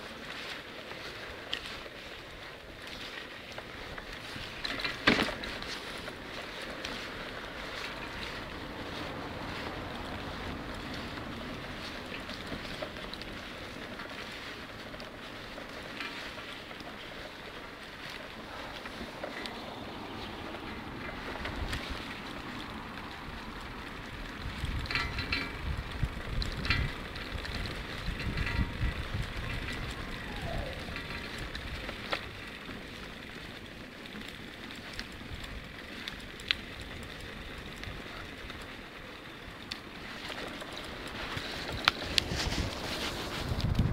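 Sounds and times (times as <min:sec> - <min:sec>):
rolling on brick pavement: 0:00.0 - 0:43.9
wind buffeting microphone: 0:18.4 - 0:32.5, 0:40.8 - 0:43.9.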